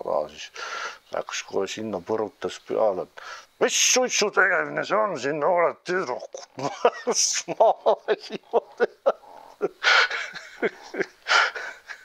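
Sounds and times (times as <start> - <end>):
wheezing gasps for breath: 0.6 - 1.1, 3.2 - 3.6, 9.2 - 10.4, 11.2 - 11.9
man laughing hard: 6.2 - 12.0.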